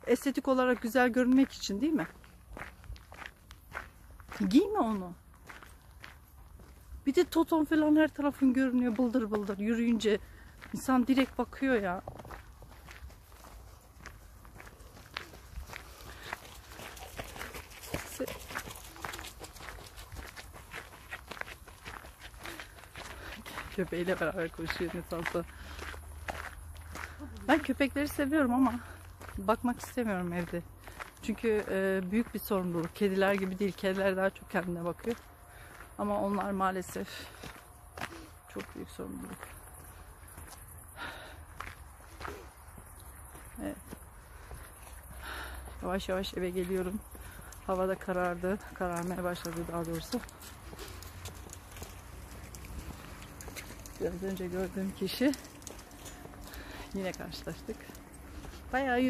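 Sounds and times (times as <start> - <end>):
footsteps on paved path: 0.0 - 59.0.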